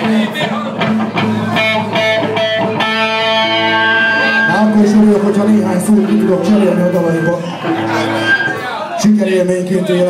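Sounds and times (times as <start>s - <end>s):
electric guitar single notes: 0.0s - 9.0s.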